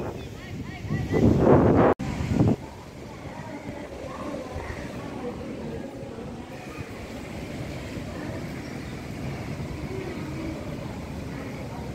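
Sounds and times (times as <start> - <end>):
surf breaking on shore: 0.0 - 11.9
wind buffeting microphone: 0.0 - 11.9.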